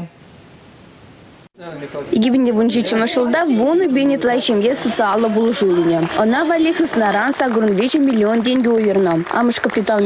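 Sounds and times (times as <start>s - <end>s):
faint background hiss: 0.0s - 4.0s.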